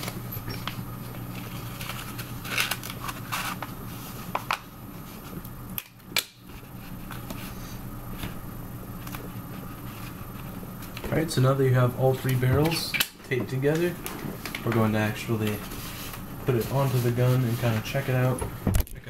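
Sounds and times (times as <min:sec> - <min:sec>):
paper rustling and crinkling: 0:00.0 - 0:05.4, 0:13.6 - 0:18.4
steady low hum: 0:00.0 - 0:19.0.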